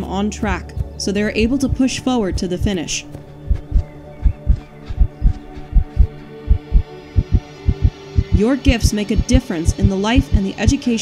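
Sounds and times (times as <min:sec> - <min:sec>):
low sustained hum: 0:00.0 - 0:11.0
heartbeat thumps: 0:00.5 - 0:10.8.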